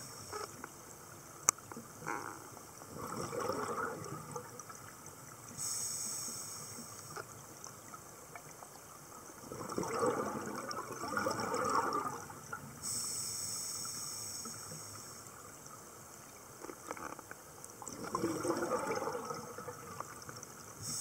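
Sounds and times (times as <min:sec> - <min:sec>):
exhaled bubbles gurgling: 0:01.9 - 0:05.6, 0:07.1 - 0:12.9, 0:16.7 - 0:21.0
regulator hissing inhale: 0:05.6 - 0:07.1, 0:12.8 - 0:15.3.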